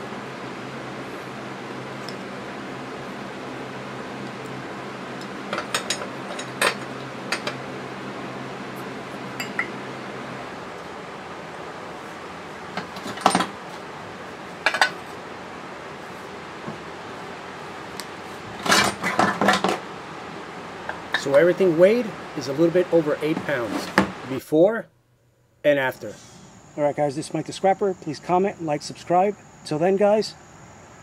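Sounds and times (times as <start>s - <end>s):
steady low hum: 0.0s - 31.0s.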